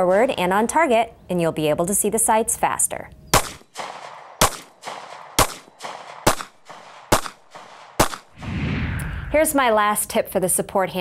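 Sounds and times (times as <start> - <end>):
pistol shots with echo: 3.3 - 8.4.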